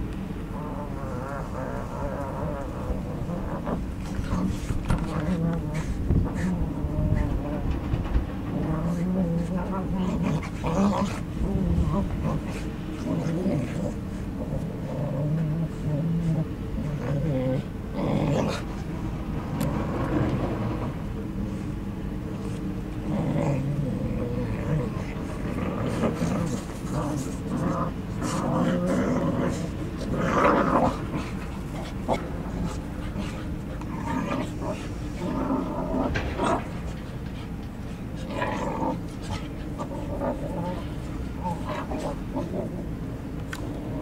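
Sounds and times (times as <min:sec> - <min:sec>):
dogs growling: 0:00.0 - 0:44.0
low background rumble: 0:00.0 - 0:44.0.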